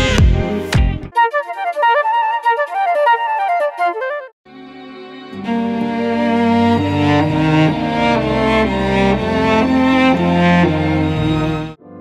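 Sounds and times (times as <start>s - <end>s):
flute playing quick melody: 1.1s - 6.4s.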